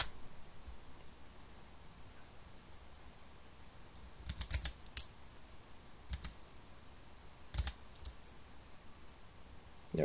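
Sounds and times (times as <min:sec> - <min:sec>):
computer keyboard keystrokes: 0:04.0 - 0:05.1, 0:06.1 - 0:06.4, 0:07.5 - 0:08.2.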